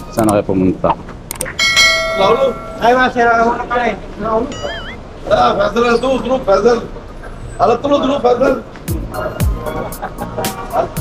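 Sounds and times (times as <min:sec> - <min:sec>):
men talking: 0:00.0 - 0:01.1, 0:01.9 - 0:11.0.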